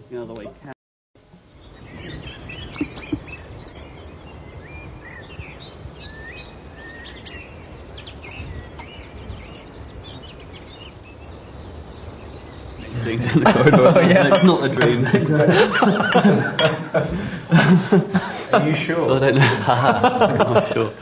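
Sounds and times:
low outdoor background noise: 0.0 - 21.0
birds chirping and singing: 1.4 - 21.0.

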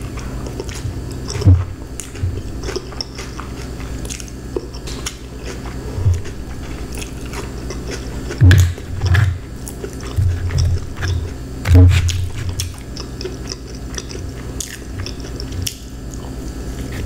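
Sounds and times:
chewing food: 0.0 - 17.0.

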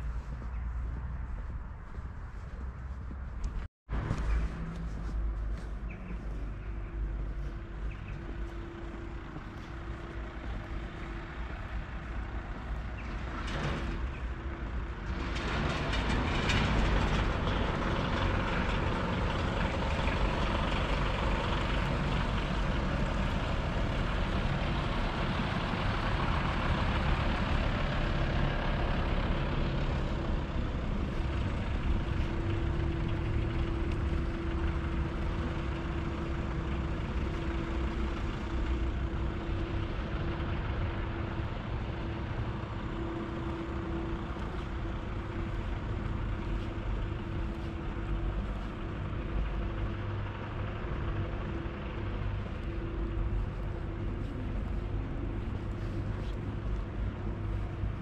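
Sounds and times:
car engine and tyre noise: 0.0 - 58.0
steady low hum: 29.0 - 58.0.

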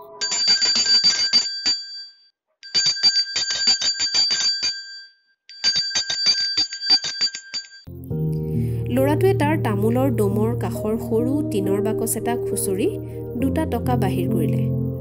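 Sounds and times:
bicycle bell dinging: 0.2 - 7.9.

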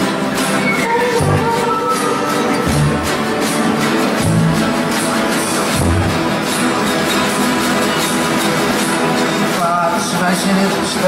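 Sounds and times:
many guitars playing: 0.0 - 11.0.

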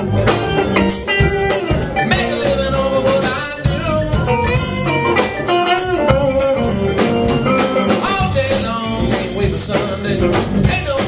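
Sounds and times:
pedal steel guitar: 0.0 - 9.2
live rock band playing: 0.0 - 11.0.

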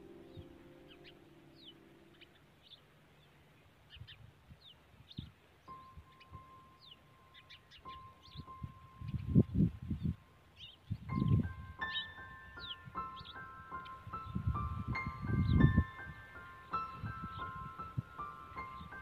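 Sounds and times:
soft background music: 0.0 - 2.4, 5.7 - 10.4, 11.1 - 19.0.

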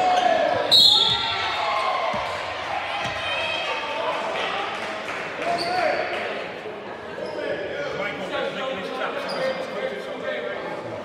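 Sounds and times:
overlapping echoing voices: 0.0 - 9.1.

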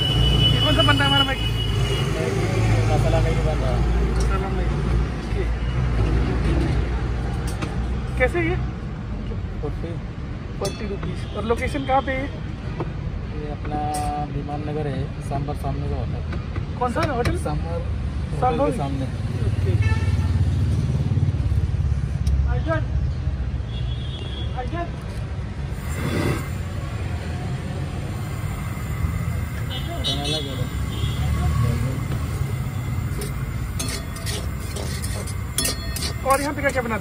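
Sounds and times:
steady low street rumble: 0.0 - 37.0
people talking: 29.7 - 32.7, 36.0 - 37.0.

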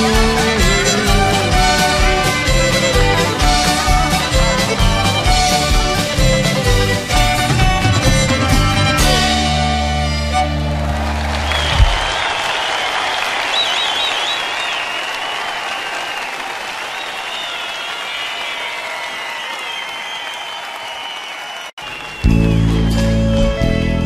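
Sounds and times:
whistling: 0.0 - 8.2, 11.2 - 22.6
band playing: 0.0 - 12.6, 21.8 - 24.0
audience applauding: 0.0 - 23.0.

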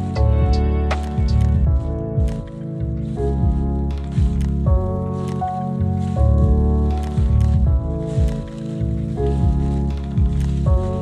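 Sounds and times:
lofi hip hop instrumental: 0.0 - 11.0.

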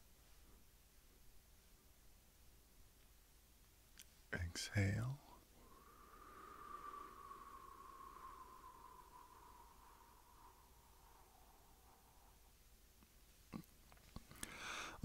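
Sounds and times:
slow exhale through lips: 5.6 - 12.6.

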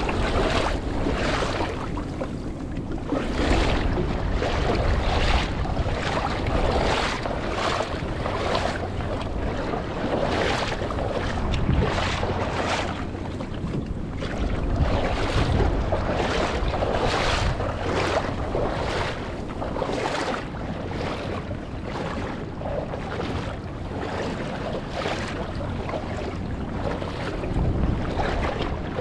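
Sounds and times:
wading splashes in water: 0.0 - 29.0
wind on microphone: 0.0 - 29.0.

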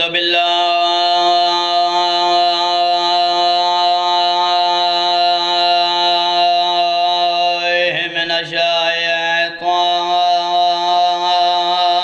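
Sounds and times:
man chanting a long note: 0.0 - 12.0.

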